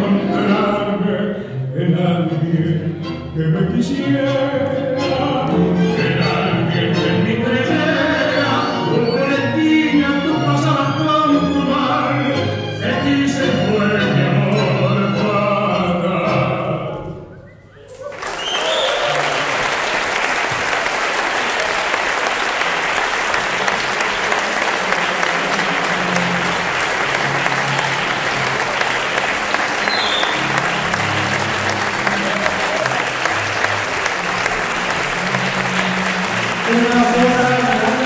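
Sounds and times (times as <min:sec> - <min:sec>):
crowd clapping: 0:17.9 - 0:38.0.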